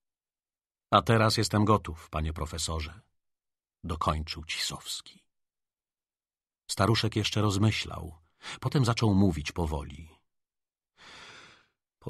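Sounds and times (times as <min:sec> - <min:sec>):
man reading aloud: 0:03.8 - 0:05.1
man inhaling: 0:11.0 - 0:11.8.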